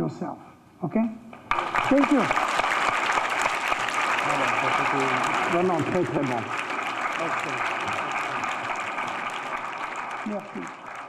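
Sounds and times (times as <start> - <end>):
audience applauding: 1.4 - 11.0.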